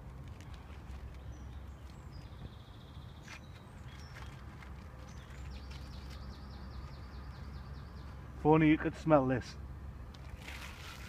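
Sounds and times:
songbirds chirping and trilling: 0.0s - 10.3s.

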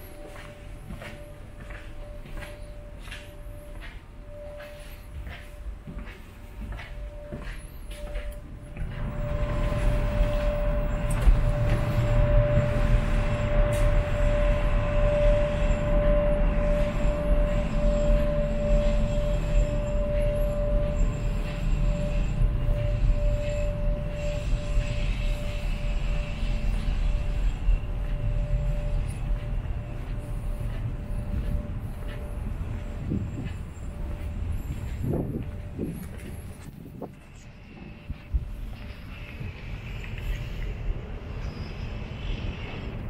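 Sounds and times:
ferry machinery rumble: 0.0s - 43.0s
mid-pitched whine: 0.0s - 43.0s
wind buffeting microphone: 23.9s - 41.3s.

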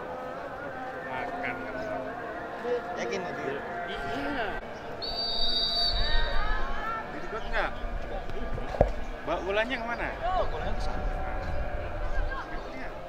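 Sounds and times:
people shouting: 4.2s - 7.2s
referee's whistle: 5.0s - 6.4s.

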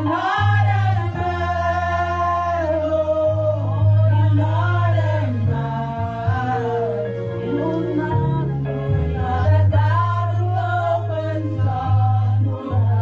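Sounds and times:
low held accompaniment notes: 0.0s - 13.0s
women singing gospel song: 0.0s - 13.0s.

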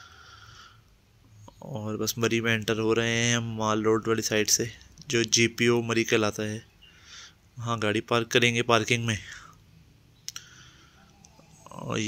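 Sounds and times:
man speaking: 1.5s - 6.7s, 7.6s - 9.6s, 11.6s - 12.0s.

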